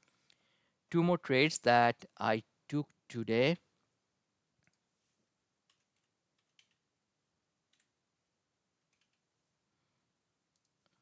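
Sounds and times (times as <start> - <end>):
computer keyboard keystrokes: 5.7 - 6.8, 7.7 - 7.9, 8.9 - 9.2.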